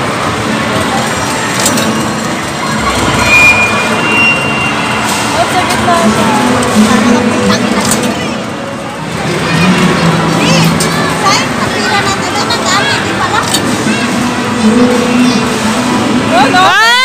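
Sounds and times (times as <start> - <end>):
game machine noise: 0.0 - 16.1
short electronic beeps: 2.8 - 5.5.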